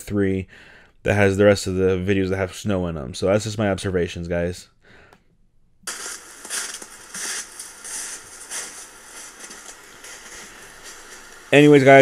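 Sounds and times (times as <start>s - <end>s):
microphone hiss: 5.8s - 12.0s
footsteps crunching in snow: 5.9s - 12.0s.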